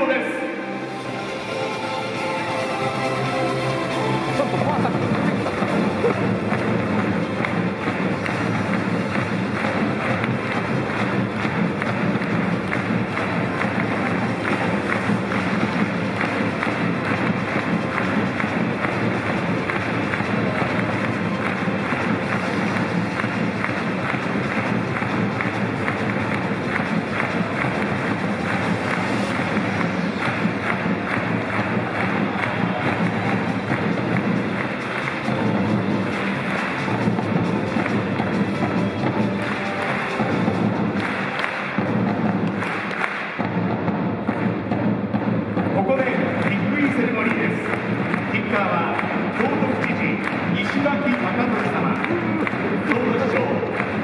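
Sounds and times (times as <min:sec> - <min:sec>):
crowd noise: 0:00.0 - 0:54.0
music over public-address system: 0:00.0 - 0:54.0.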